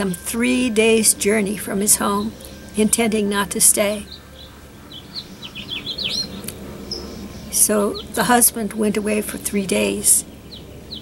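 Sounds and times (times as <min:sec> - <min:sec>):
faint low background hum: 0:00.0 - 0:11.0
small bird chirping: 0:00.8 - 0:08.5, 0:09.2 - 0:11.0.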